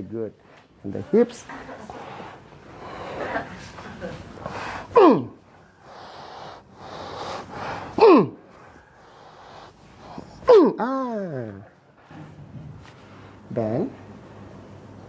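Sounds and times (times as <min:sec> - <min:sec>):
person breathing heavily: 0:01.8 - 0:03.8, 0:04.4 - 0:10.7
person crying out: 0:10.5 - 0:11.2.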